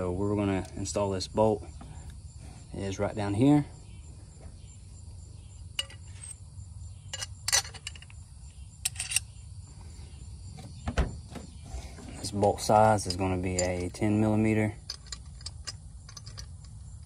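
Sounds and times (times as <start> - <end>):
steady low hum: 0.0 - 17.0
metal parts clinking: 5.8 - 6.4, 7.1 - 8.2, 8.8 - 9.4, 11.9 - 17.0.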